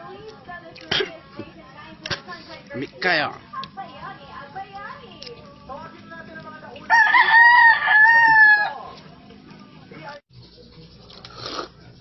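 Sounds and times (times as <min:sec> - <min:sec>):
rooster crowing: 0:06.9 - 0:09.0.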